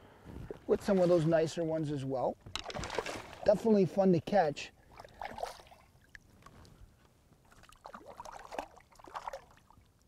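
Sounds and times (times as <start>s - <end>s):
water splashing: 2.5s - 3.7s, 4.9s - 6.1s, 7.5s - 9.8s
fish thrashing at the surface: 2.6s - 3.5s.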